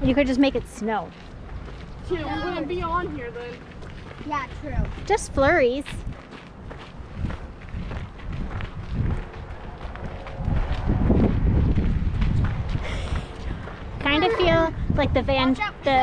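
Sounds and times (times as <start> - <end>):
footsteps crunching on gravel: 1.0 - 13.8.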